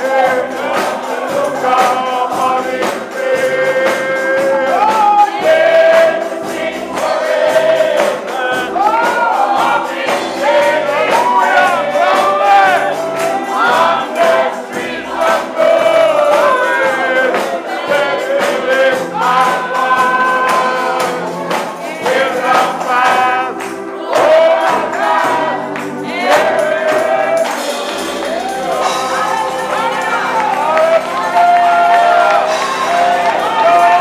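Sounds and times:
choir singing gospel: 0.0 - 34.0
percussion beat: 0.0 - 34.0.

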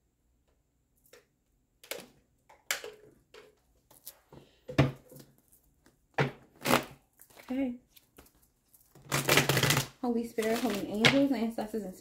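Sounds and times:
cards being shuffled by hand: 6.6 - 11.0.

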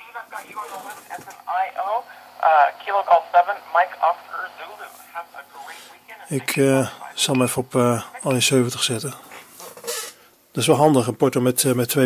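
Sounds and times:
voice over radio speaker: 0.0 - 9.4
faint steady hum: 0.0 - 12.0.

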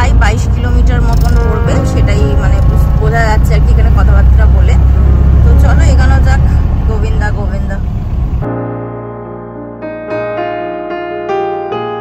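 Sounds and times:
car engine and road rumble: 0.0 - 8.6.

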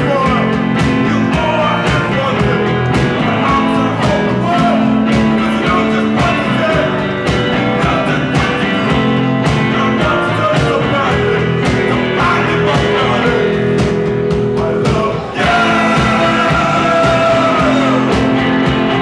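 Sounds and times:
drums beating: 0.0 - 19.0
electric bass: 0.0 - 19.0
live rock band playing: 0.0 - 19.0.

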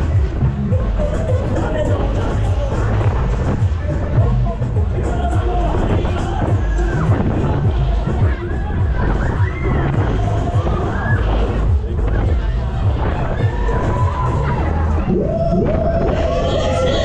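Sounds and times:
fairground music with heavy bass: 0.0 - 17.0
people screaming and cheering: 0.0 - 17.0.

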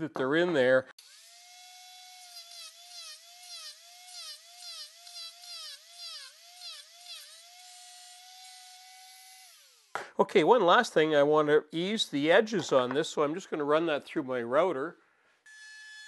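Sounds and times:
angle grinder whining: 1.0 - 10.0
grinder cutting steel: 1.0 - 10.0.

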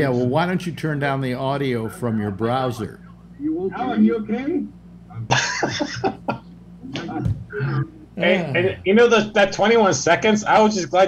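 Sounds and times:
man laughing: 5.2 - 6.4.

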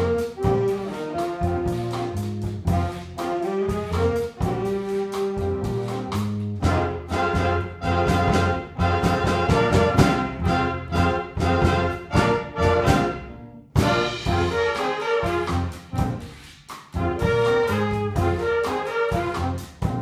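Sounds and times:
drum kit: 0.0 - 20.0
saxophones: 0.0 - 20.0
trombones: 0.0 - 20.0
trumpets: 0.0 - 20.0.

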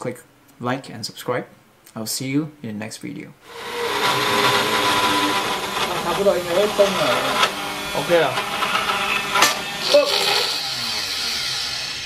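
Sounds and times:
spindle motor high-pitched whine: 3.5 - 12.0.

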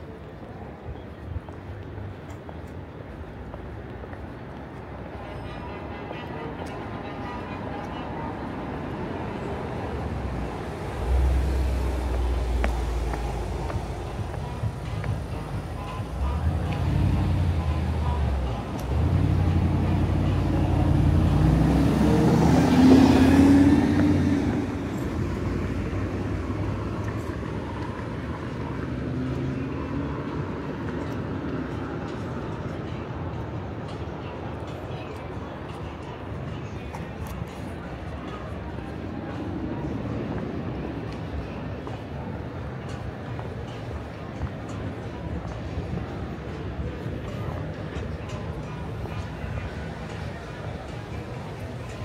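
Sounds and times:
traffic background hum: 0.0 - 52.0
vehicle passing close by: 18.9 - 26.8.

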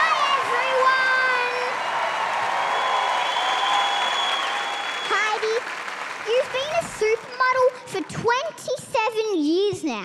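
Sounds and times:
studio audience applauding: 0.0 - 8.1.

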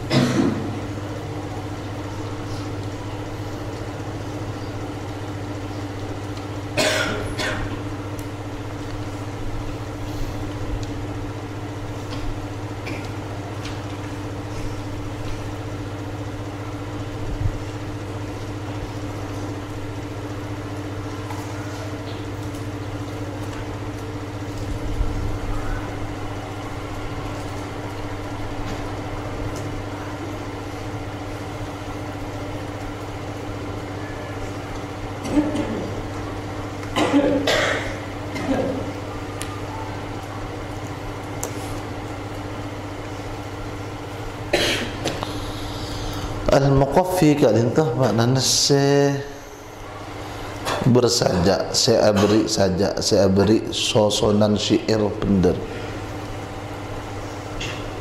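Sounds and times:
steady low hum with tones: 0.0 - 58.0
person coughing: 0.1 - 0.7, 6.8 - 7.8, 35.2 - 35.9, 37.0 - 38.8, 44.5 - 45.1, 52.2 - 52.4.

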